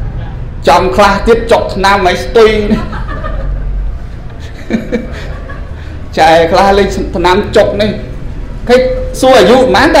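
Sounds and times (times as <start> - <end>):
man speaking into a microphone: 0.6 - 2.9, 6.1 - 10.0.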